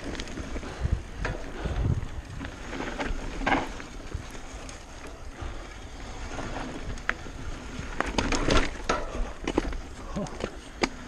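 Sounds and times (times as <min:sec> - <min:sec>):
bike rattling over bumps: 0:00.0 - 0:11.0
bike tyres rumbling on dirt: 0:00.0 - 0:11.0.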